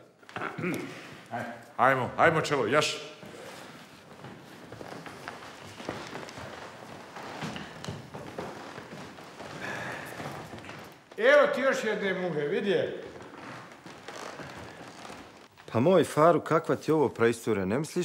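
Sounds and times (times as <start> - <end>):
footsteps on wooden floor: 3.2 - 11.6, 12.9 - 15.8.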